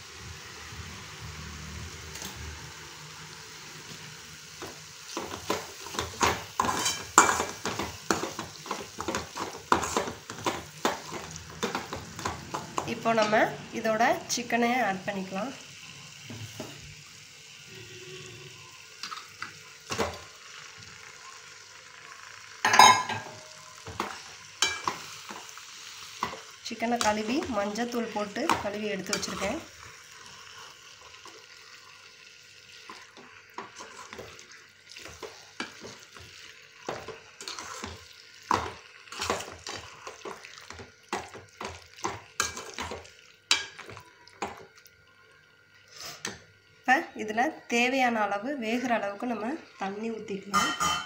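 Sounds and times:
food frying: 0.0s - 51.0s
spices sizzling in a pan: 0.0s - 51.0s
metal spoon scraping a pan: 5.1s - 13.4s, 27.0s - 31.2s, 33.6s - 34.3s, 36.9s - 40.3s, 50.5s - 51.0s
metal clanks on pan: 22.6s - 25.0s, 50.5s - 51.0s.

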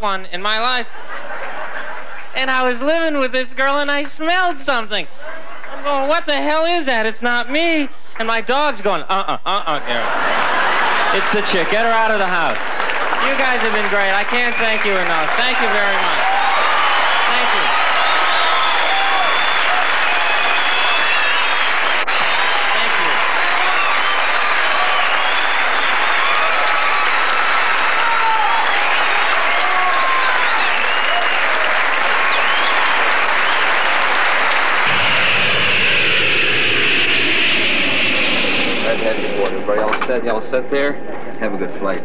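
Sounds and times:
audience applauding and cheering: 9.9s - 36.8s
shouts and whistles: 13.2s - 36.3s
airliner cabin noise: 31.9s - 42.0s.

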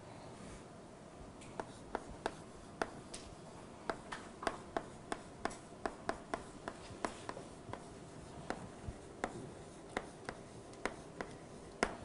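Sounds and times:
chalk taps and scratches on board: 1.4s - 12.0s.

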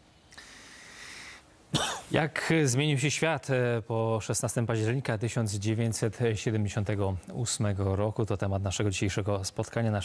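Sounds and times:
person breathing into microphone: 0.3s - 1.5s.

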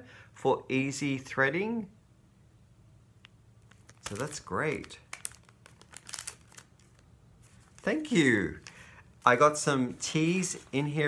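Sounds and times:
plastic packaging crinkling: 3.6s - 11.0s.

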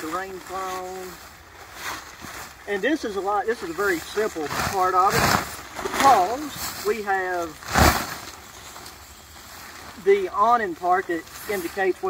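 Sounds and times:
nylon tent fly rustling: 0.0s - 12.0s.

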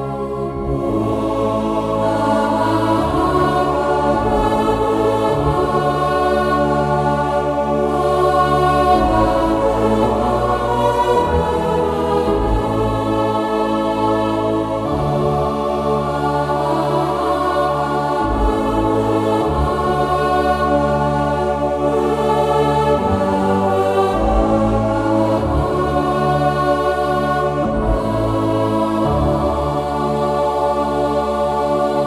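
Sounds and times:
keyboard playing sustained chords: 0.0s - 32.0s.

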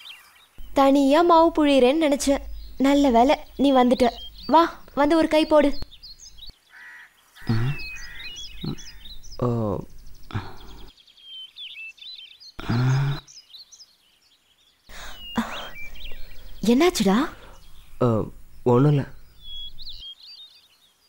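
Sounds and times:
small birds chirping: 0.0s - 21.0s
short wordless voice sounds: 7.5s - 8.0s, 8.6s - 10.9s, 16.6s - 19.8s.

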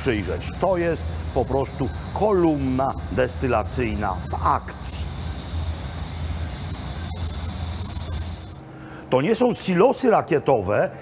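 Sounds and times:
steam hiss: 0.0s - 8.6s.

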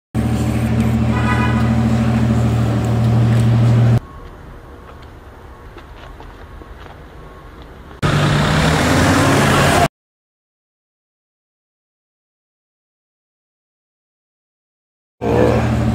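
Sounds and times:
car engine humming: 0.2s - 9.9s, 15.2s - 15.9s.

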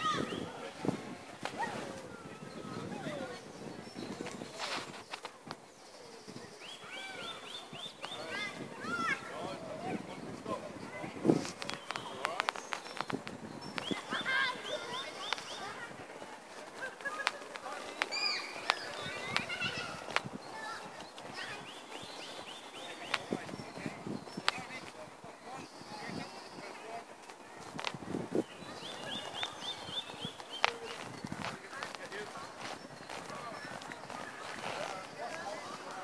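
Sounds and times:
birds calling: 0.0s - 36.0s
distant voices: 0.0s - 36.0s.

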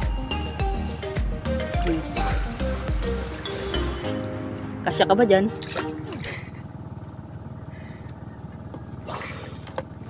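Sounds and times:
low steady rumble: 0.0s - 10.0s
water splash: 5.5s - 6.4s.

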